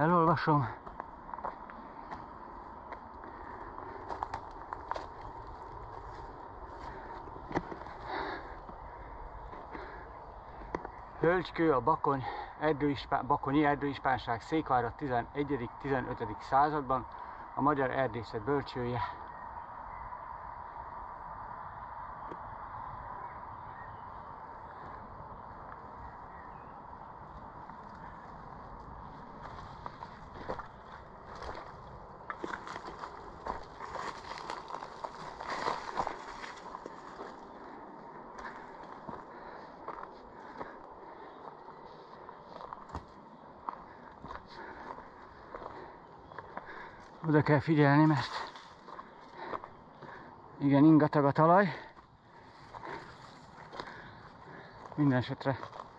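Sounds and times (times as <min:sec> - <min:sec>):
footsteps on leaves and twigs: 0:00.0 - 0:11.2, 0:27.2 - 0:50.3, 0:51.7 - 0:55.9.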